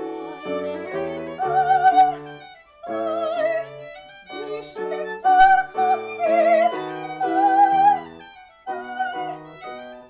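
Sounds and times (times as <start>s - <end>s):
piano accompaniment: 0.0s - 10.0s
soprano singing with vibrato: 0.0s - 10.0s
violin playing: 0.0s - 10.0s.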